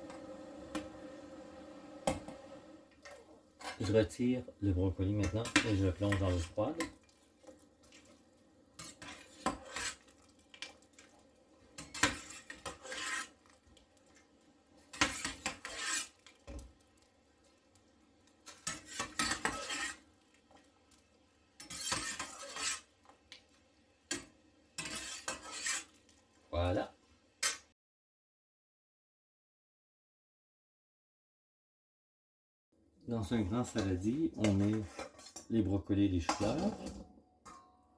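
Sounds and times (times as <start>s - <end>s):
metal pot and utensils clattering: 3.0s - 4.2s, 5.1s - 8.2s, 8.8s - 11.1s, 11.8s - 13.6s, 14.9s - 16.6s, 18.4s - 20.1s, 21.6s - 22.9s, 24.1s - 26.0s, 33.3s - 37.9s.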